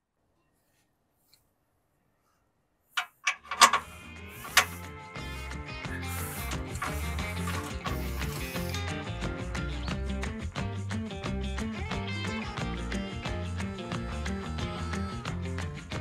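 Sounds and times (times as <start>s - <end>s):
background music with bass line: 3.4s - 16.0s.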